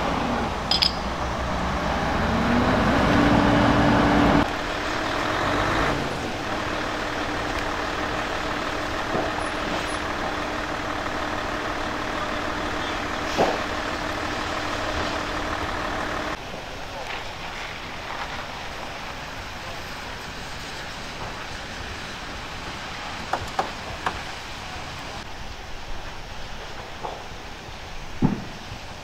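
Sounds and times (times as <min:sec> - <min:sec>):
heavy vehicle engine revving: 0:00.0 - 0:16.4.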